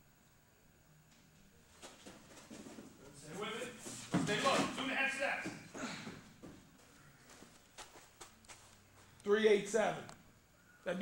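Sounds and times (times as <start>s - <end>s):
man talking: 3.1s - 5.7s.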